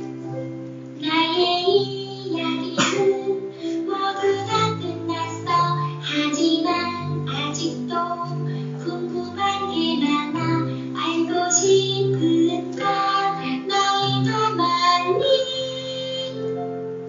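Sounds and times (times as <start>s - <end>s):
instrumental accompaniment: 0.0s - 17.0s
children and women singing: 1.0s - 3.4s, 4.0s - 16.5s.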